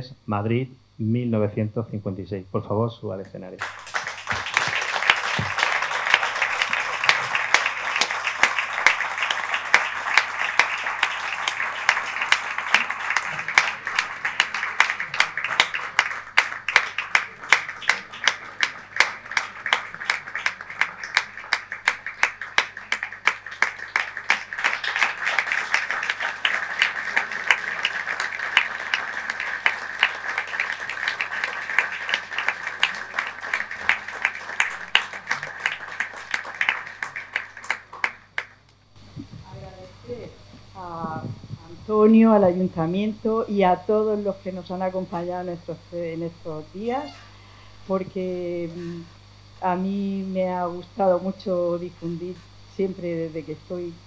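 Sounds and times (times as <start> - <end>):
audience applauding: 3.6 - 39.7.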